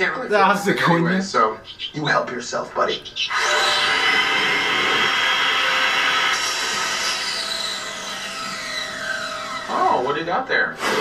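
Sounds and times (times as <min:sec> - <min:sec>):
circular saw whining: 0:03.3 - 0:10.4.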